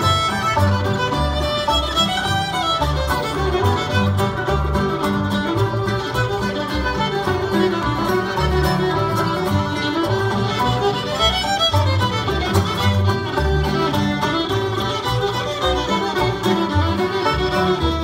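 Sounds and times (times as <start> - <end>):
bass line: 0.0 - 18.0
fiddle lead: 0.0 - 18.0
strummed guitar: 0.0 - 18.0.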